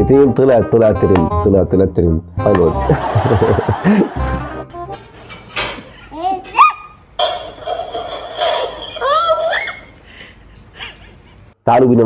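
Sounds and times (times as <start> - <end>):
music: 0.0 - 5.0
high-pitched voice squealing: 8.5 - 9.9.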